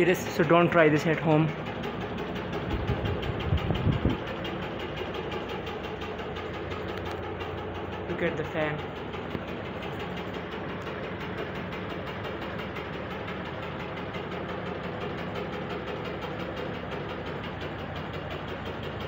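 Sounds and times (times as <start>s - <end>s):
ceiling fan drone with pulsing: 0.0s - 19.0s.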